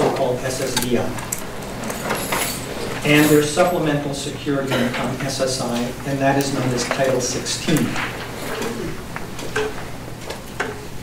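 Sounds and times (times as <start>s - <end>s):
low steady room hum: 0.0s - 11.0s
chair creaking and squeaking: 0.6s - 3.7s, 6.6s - 9.8s.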